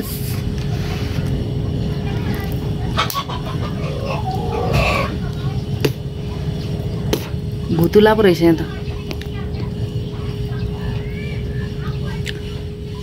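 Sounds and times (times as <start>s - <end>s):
steady low rumble: 0.0s - 13.0s.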